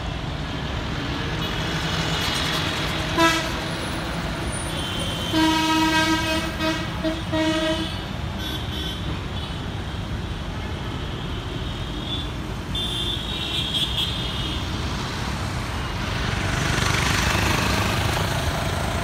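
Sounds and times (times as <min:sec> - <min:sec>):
road traffic rumble: 0:00.0 - 0:19.0.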